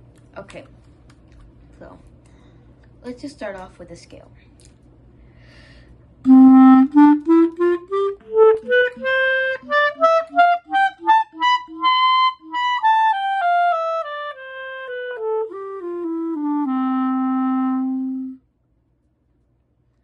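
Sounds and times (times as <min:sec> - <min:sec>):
clarinet playing a scale: 0:06.3 - 0:18.4.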